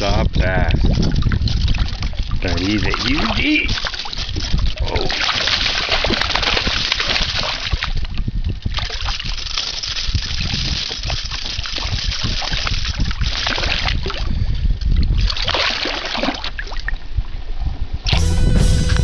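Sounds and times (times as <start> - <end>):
fish splashing in water: 0.9 - 14.3, 14.9 - 17.0.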